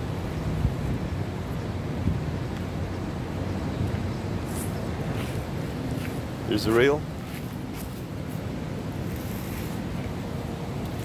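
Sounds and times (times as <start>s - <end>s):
street traffic: 0.0s - 11.0s
wind on microphone: 0.0s - 11.0s.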